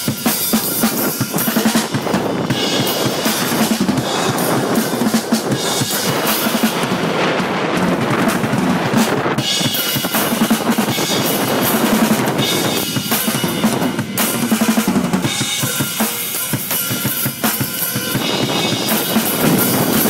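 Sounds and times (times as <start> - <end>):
drum kit beat: 0.0 - 20.0.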